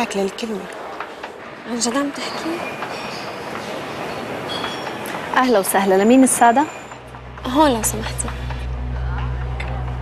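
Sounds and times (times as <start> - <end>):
cafe background noise: 0.0 - 10.0.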